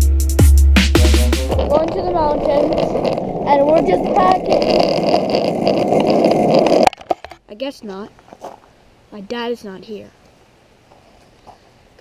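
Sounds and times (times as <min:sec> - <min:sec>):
loud steady rushing noise: 0:01.0 - 0:06.7
child talking: 0:01.6 - 0:04.9, 0:07.5 - 0:08.1, 0:09.1 - 0:10.2.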